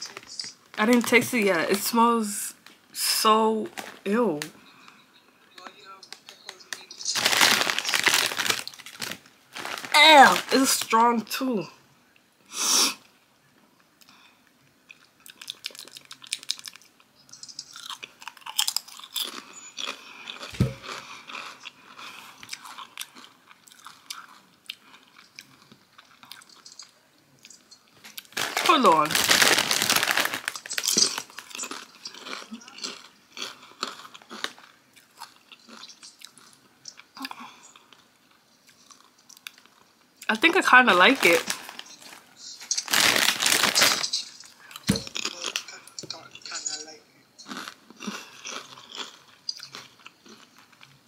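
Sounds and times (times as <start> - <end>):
person speaking: 0.0 - 4.9, 5.5 - 11.8, 28.4 - 31.4, 40.3 - 47.1
person crunching chips: 6.2 - 11.0, 14.9 - 38.0, 41.0 - 45.8, 47.4 - 51.0.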